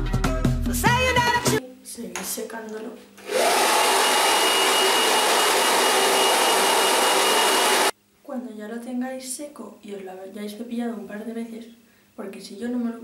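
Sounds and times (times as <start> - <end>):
hair dryer blowing: 3.2 - 8.0.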